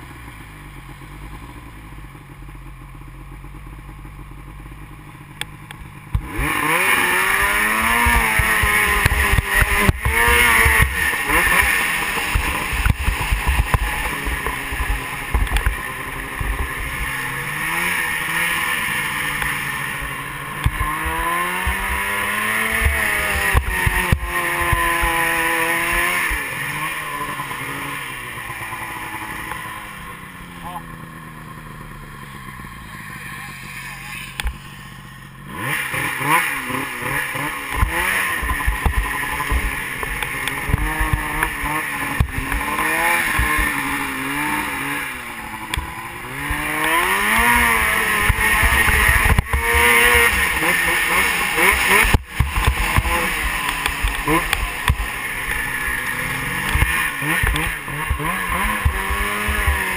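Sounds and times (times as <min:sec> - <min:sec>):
snowmobile engine revving: 0:05.2 - 0:59.9.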